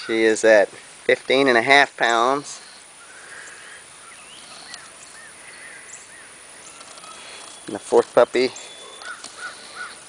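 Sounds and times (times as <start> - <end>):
faint steady hiss: 0.0 - 10.0
bird chirping: 2.0 - 10.0.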